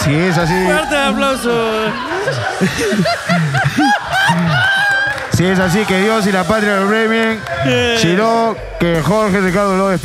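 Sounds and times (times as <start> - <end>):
men laughing: 0.4 - 6.0.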